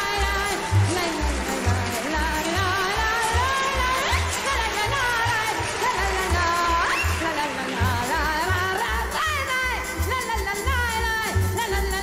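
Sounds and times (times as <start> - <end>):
band accompaniment: 0.0 - 12.0
woman singing with vibrato: 0.0 - 12.0.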